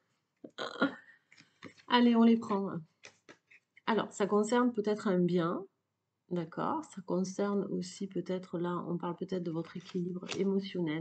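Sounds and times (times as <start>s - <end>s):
cards being shuffled: 1.3s - 3.8s, 9.6s - 10.6s.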